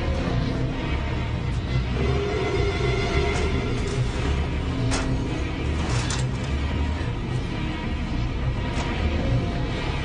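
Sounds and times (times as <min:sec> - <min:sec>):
dark horror film score: 0:00.0 - 0:10.0
low pulsing rumble: 0:00.0 - 0:10.0.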